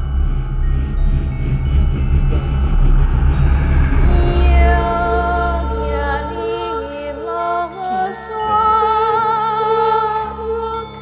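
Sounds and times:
electronic drone music: 0.0s - 11.0s.

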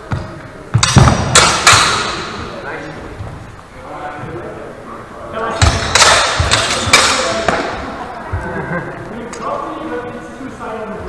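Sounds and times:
longswords knocking: 0.8s - 2.4s, 5.6s - 7.8s.

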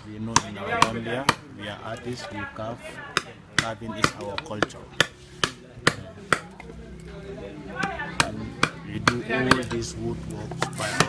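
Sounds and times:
carving tool chopping wood: 0.0s - 2.2s, 3.1s - 6.6s, 7.8s - 9.9s, 10.5s - 11.0s.

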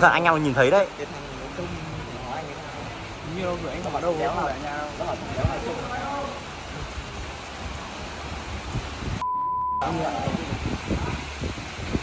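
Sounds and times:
rain hiss: 0.0s - 9.2s, 9.8s - 12.0s
censor bleep: 9.2s - 9.9s.

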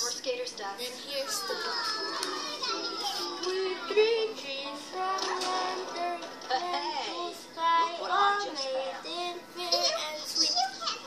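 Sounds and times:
children talking and calling: 0.8s - 11.0s.

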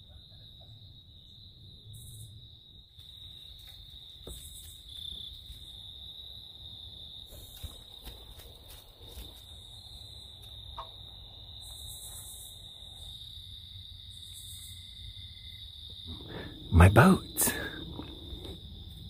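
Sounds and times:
crickets trilling: 0.0s - 19.0s
raspy insect call: 0.0s - 19.0s.

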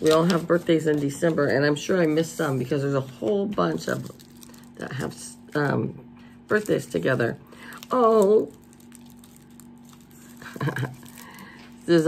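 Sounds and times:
plastic wrapper crinkling: 0.0s - 2.7s, 3.6s - 5.5s, 6.5s - 12.0s.

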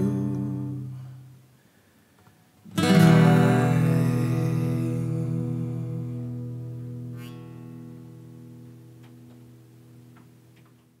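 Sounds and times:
acoustic guitar chord ringing: 0.0s - 1.2s, 2.7s - 10.6s.

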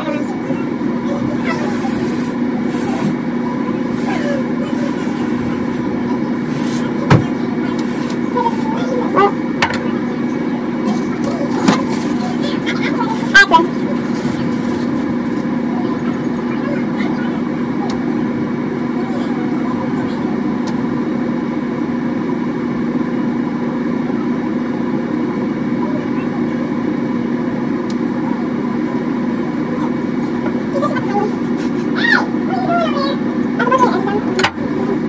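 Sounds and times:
low mechanical hum: 0.0s - 35.0s.

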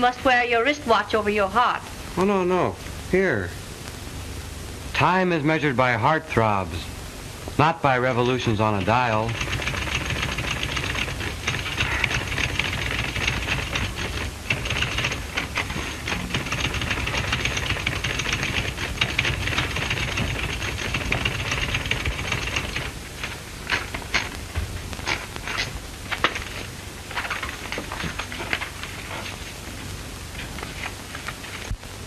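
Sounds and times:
steady low hum: 0.0s - 32.0s
typewriter keystrokes: 9.3s - 22.9s.

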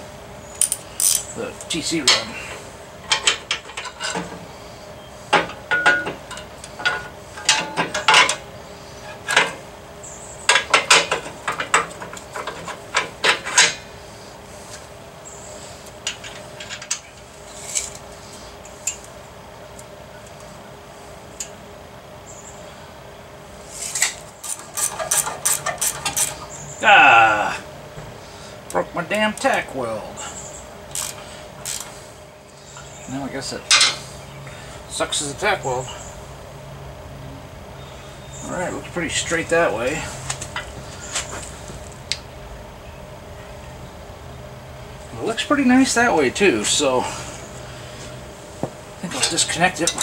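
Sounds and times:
metal parts and wrench clinking: 0.6s - 1.3s.

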